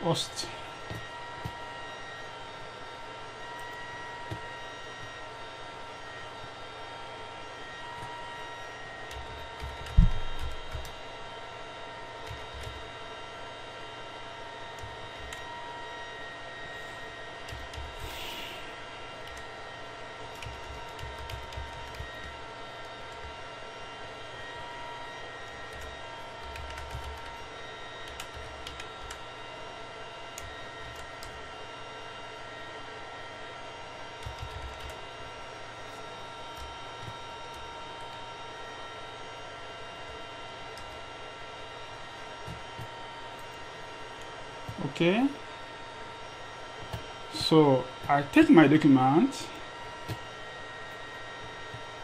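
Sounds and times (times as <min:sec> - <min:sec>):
faint whining tones: 0:00.0 - 0:52.0
machine hum: 0:00.0 - 0:52.0.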